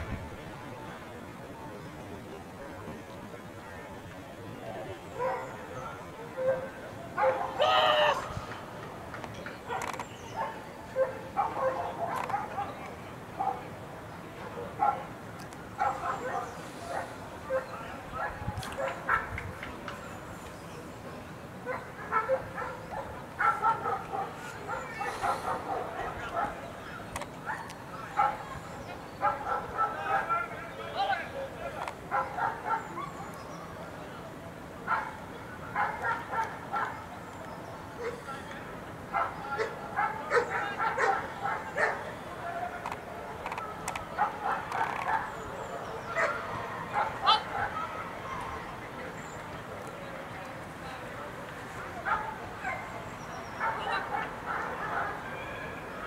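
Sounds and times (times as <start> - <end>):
dog barking: 5.2 - 5.5, 6.4 - 7.6, 9.7 - 12.8, 14.8 - 15.0, 15.8 - 19.3, 21.7 - 26.6, 27.5 - 28.4, 29.2 - 30.3, 32.1 - 33.2, 34.9 - 35.2, 35.8 - 37.0, 39.1 - 42.0, 46.1 - 47.8, 52.1 - 52.9, 53.6 - 55.2
dog barking and yipping: 9.7 - 12.7.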